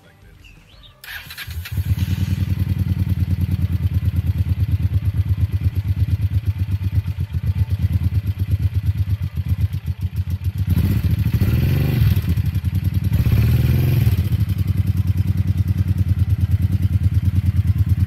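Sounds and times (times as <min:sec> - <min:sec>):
motorcycle engine starting and idling: 0:00.9 - 0:18.0.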